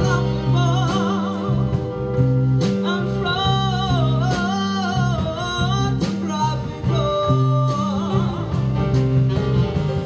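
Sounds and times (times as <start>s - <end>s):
woman singing jazz: 0.0s - 9.3s
bass notes: 0.0s - 10.0s
drums: 0.0s - 10.0s.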